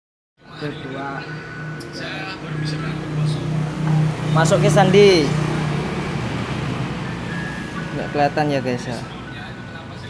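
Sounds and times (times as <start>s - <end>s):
steady background noise: 0.4s - 10.0s
low hum: 0.5s - 7.9s.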